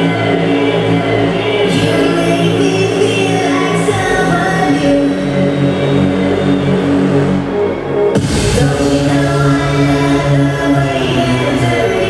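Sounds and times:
pulsing synth and bass electronic music: 0.0 - 12.0.

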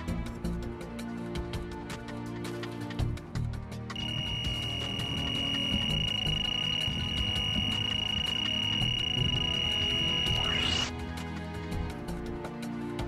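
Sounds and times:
background music: 0.0 - 13.0
bite alarm high tone: 4.0 - 10.7.

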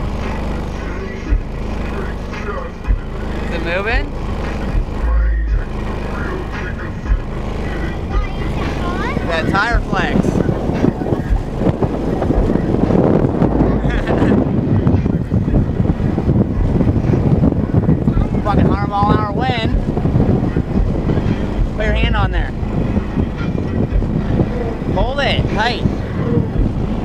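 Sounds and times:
subwoofer bass rumble: 0.0 - 27.0
wind buffeting microphone: 0.0 - 27.0.

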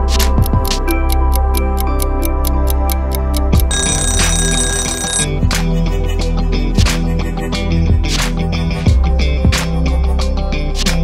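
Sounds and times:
background music with a beat: 0.0 - 5.8, 6.4 - 11.0
electronic timer alarm ringing: 3.6 - 5.3.

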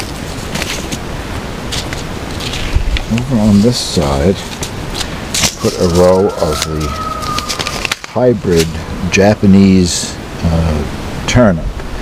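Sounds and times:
paper packet rustling: 0.0 - 8.8
wind buffeting microphone: 0.0 - 9.1.

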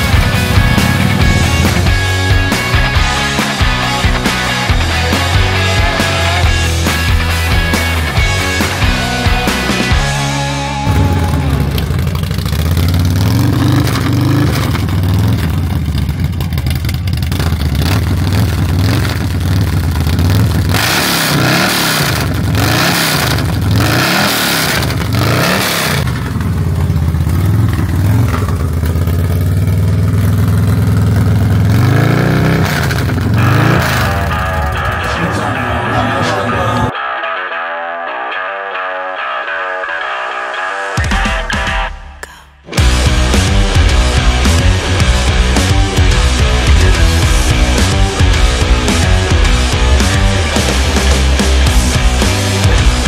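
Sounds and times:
motorcycle idling with deep rumble: 0.0 - 3.2, 10.8 - 21.4, 22.0 - 35.2
motorcycle throttle blips: 10.8 - 35.1.

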